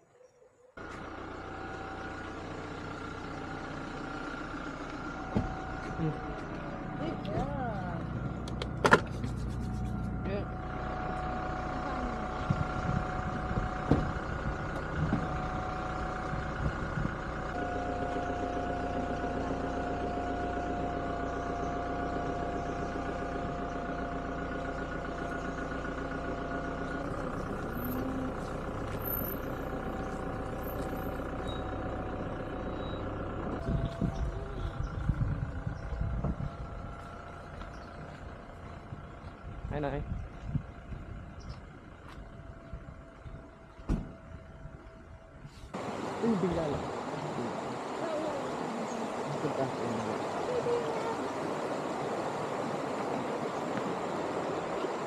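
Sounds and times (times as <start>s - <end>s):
car engine idling: 0.8s - 55.0s
car door thump: 5.3s - 5.6s, 13.8s - 14.2s, 43.8s - 44.2s.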